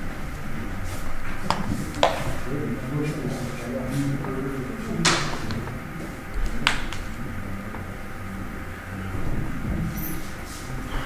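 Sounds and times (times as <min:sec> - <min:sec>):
low rumble in large hall: 0:00.0 - 0:11.0.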